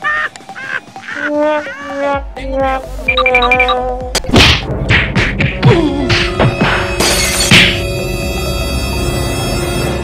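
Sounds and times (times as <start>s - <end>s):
background music: 0.0s - 10.0s
loud whacks of fight blows: 4.2s - 5.5s.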